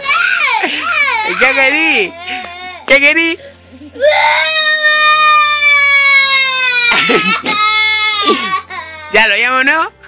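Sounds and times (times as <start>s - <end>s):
small girl crying: 3.8s - 9.2s.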